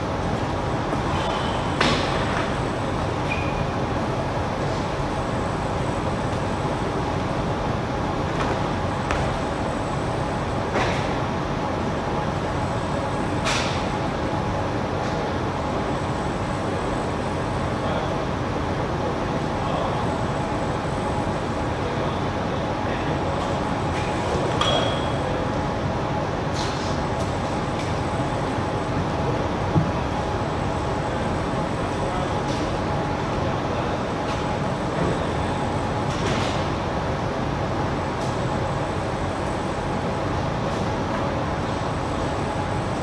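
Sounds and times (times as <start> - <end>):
room hum and hiss: 0.0 - 43.0.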